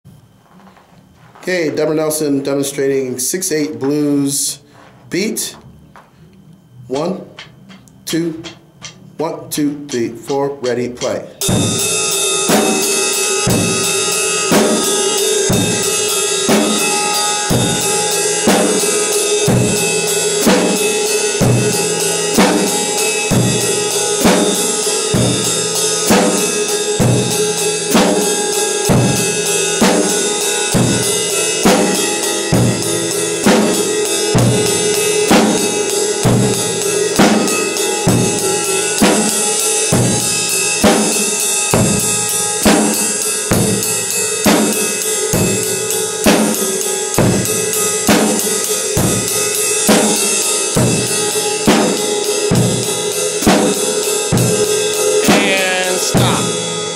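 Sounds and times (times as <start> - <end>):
cymbal strokes: 11.4 - 56.9.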